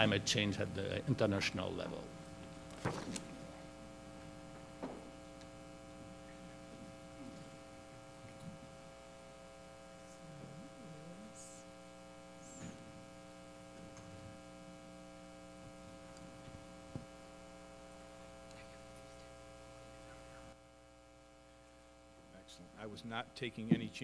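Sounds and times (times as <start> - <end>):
electrical mains hum: 0.0 - 24.0.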